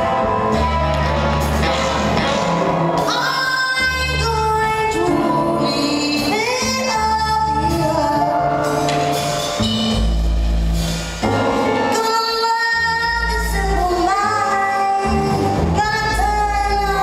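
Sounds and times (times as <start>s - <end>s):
deep bass line: 0.0s - 12.0s
big band playing: 0.0s - 17.0s.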